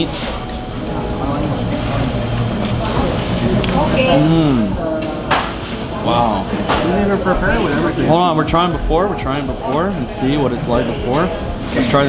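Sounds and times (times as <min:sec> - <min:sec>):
diners chattering: 0:00.0 - 0:12.0
steady low hum: 0:00.0 - 0:12.0.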